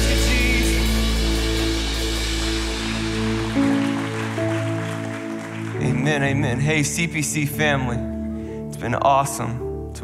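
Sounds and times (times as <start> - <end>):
deep bass: 0.0 - 8.3.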